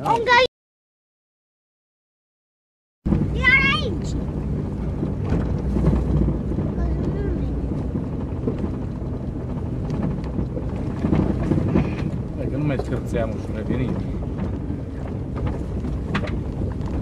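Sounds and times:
vehicle engine running: 0:03.1 - 0:17.0
vehicle knocks and rattles: 0:03.1 - 0:17.0.

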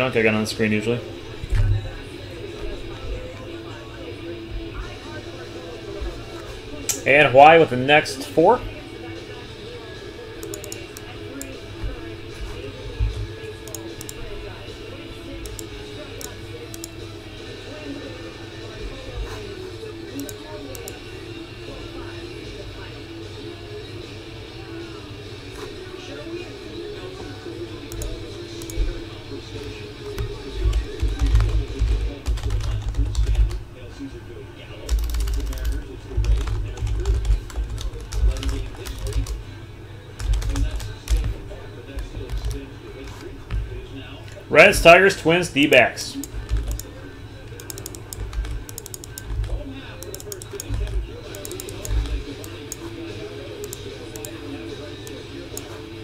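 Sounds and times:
background music: 0:00.0 - 0:33.7
keyboard typing: 0:10.4 - 0:11.0, 0:15.4 - 0:17.0, 0:30.2 - 0:33.6, 0:34.9 - 0:39.4, 0:40.2 - 0:41.3, 0:46.2 - 0:46.9, 0:47.5 - 0:52.9.

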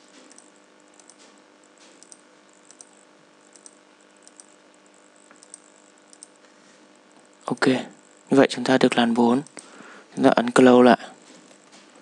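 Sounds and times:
low steady hum: 0:00.0 - 0:12.0
computer mouse clicks: 0:00.2 - 0:06.4.

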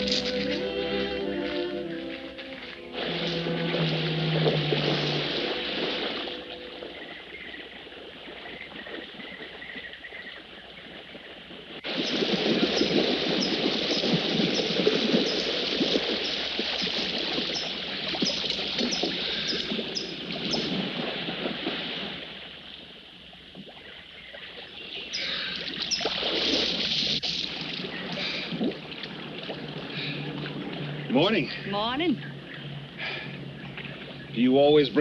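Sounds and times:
held orchestral chord: 0:00.0 - 0:07.3
swimmer splashing water: 0:00.0 - 0:35.0.

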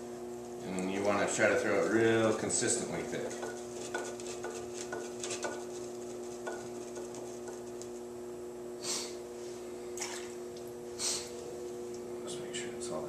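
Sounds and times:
potter's wheel humming: 0:00.0 - 0:13.0.

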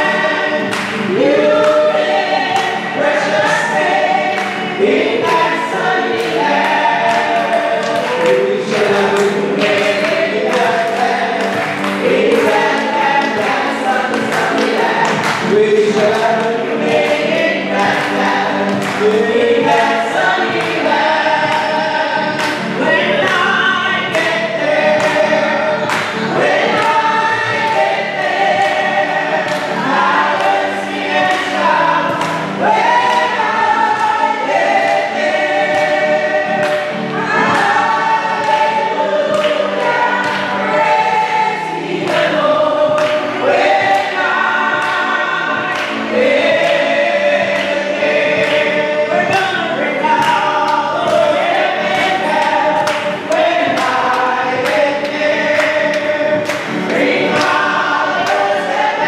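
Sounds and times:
vocal group singing gospel: 0:00.0 - 0:59.0.

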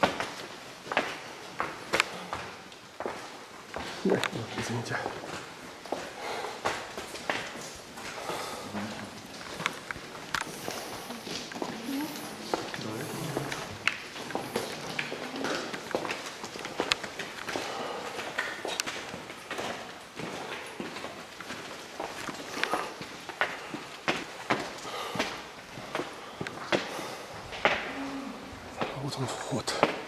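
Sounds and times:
footsteps on cave path: 0:00.0 - 0:30.0
faint voices: 0:08.2 - 0:09.3, 0:10.4 - 0:15.9.

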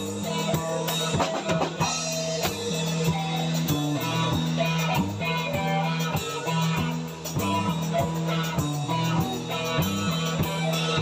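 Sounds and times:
drum kit beat: 0:00.0 - 0:11.0
electric guitars playing: 0:00.0 - 0:11.0.

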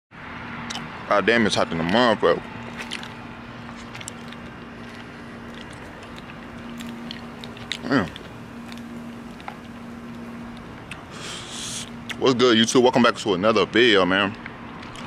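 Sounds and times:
steady low hum: 0:00.2 - 0:15.0
mouth chewing candy: 0:02.6 - 0:12.2, 0:14.3 - 0:15.0
breath hiss: 0:11.1 - 0:11.9.

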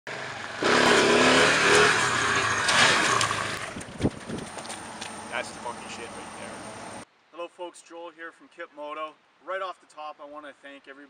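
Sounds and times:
van engine under throttle: 0:00.1 - 0:07.0
tyres on wet gravel: 0:00.2 - 0:07.0.

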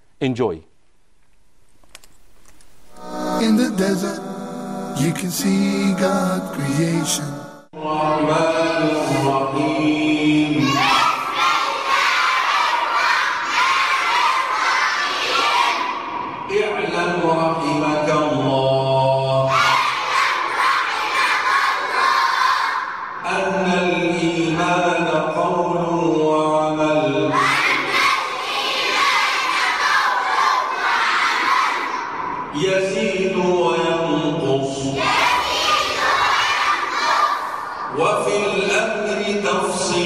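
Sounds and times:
man chanting: 0:02.9 - 0:10.8, 0:16.5 - 0:19.5, 0:23.2 - 0:27.4, 0:32.5 - 0:35.0, 0:37.9 - 0:40.0
children chanting in unison: 0:06.3 - 0:16.5, 0:19.4 - 0:23.2, 0:27.1 - 0:32.5, 0:34.7 - 0:38.0.

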